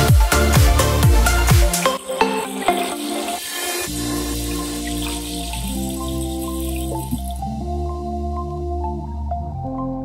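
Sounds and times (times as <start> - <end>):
background music with plinking notes: 0.0 - 10.0
soda splashing into water: 1.9 - 7.5.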